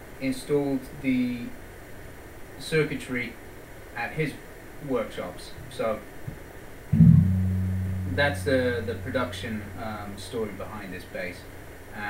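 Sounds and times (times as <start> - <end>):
electric bass note ringing: 7.0 - 9.8.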